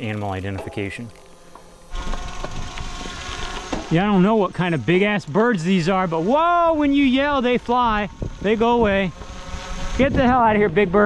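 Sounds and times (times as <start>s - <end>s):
bicycle tyres on gravel: 0.0s - 11.0s.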